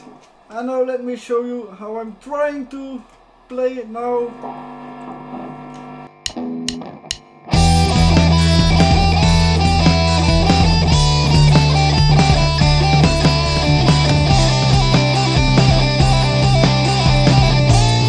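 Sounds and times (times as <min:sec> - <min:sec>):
bass line: 0:04.3 - 0:18.0
sharp clicks: 0:05.7 - 0:07.3
drums: 0:06.2 - 0:18.0
electric guitar solo: 0:06.2 - 0:18.0.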